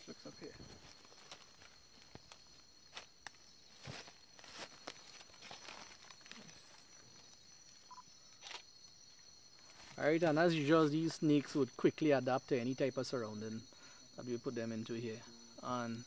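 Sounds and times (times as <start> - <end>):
insects trilling: 0.0 - 16.0
short high insect chirp: 0.0 - 16.0.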